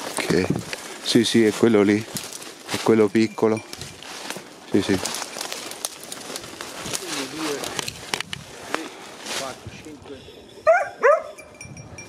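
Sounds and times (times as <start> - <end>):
footsteps crunching through dry leaves: 0.0 - 10.7.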